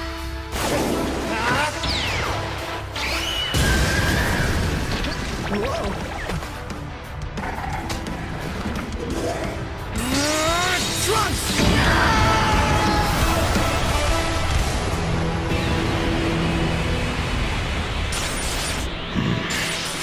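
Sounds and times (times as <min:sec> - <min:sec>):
soundtrack music: 0:00.0 - 0:20.0
person shouting: 0:10.0 - 0:13.5.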